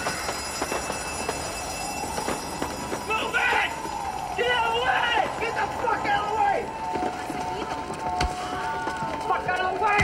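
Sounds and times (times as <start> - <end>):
people running on concrete: 0.0 - 10.0.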